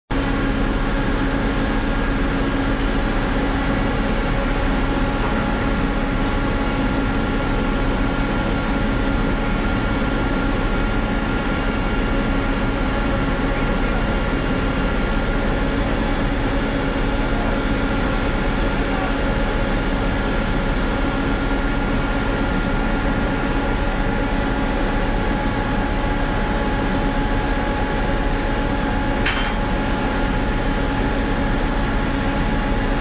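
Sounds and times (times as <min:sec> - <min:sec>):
engine drone: 0:00.1 - 0:33.0.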